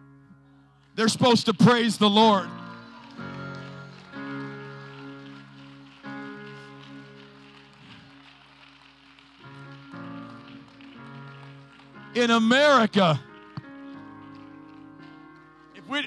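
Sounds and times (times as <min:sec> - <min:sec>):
soft keyboard chords: 0:00.0 - 0:16.0.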